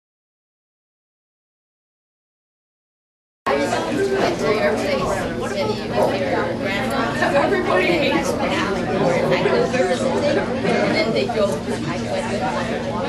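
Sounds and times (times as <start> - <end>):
overlapping conversational chatter: 3.5 - 13.0.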